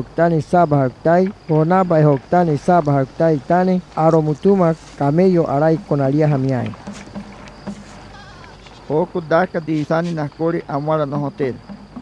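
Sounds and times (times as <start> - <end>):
livestock bleating: 8.0 - 8.7.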